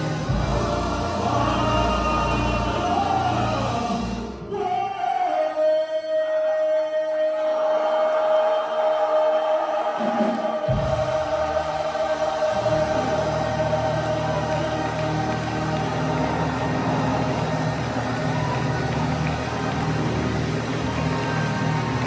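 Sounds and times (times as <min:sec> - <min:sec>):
gospel choir singing: 0:00.0 - 0:22.0.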